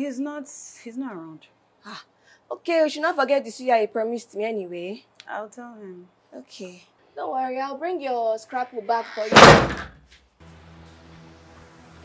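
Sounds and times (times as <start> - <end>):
front door slamming: 9.2 - 10.0.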